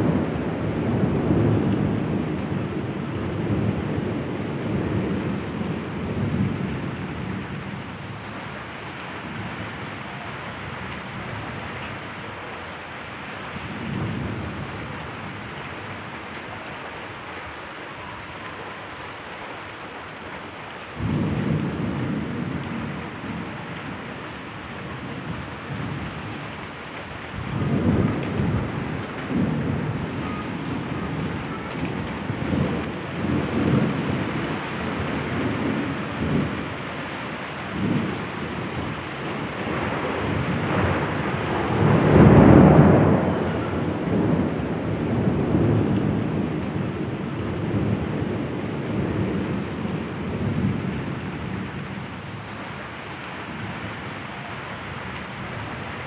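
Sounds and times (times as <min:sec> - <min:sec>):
rolling thunder: 0:00.0 - 0:08.2, 0:21.0 - 0:24.2, 0:27.3 - 0:36.8, 0:37.6 - 0:52.2
steady rain: 0:00.0 - 0:56.0.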